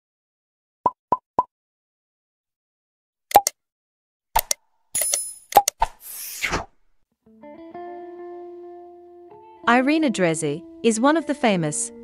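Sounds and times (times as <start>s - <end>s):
sharp clicks: 3.3s - 3.5s, 4.4s - 5.8s.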